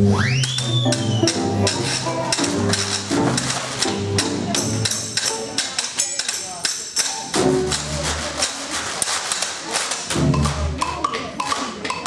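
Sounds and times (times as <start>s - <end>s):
jazz band playing: 0.0s - 5.6s, 7.3s - 9.1s, 10.0s - 11.4s.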